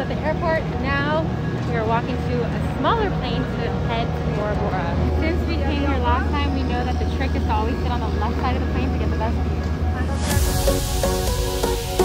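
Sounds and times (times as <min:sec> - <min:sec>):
people talking: 0:00.0 - 0:10.3
turboprop airliner droning: 0:00.0 - 0:12.0.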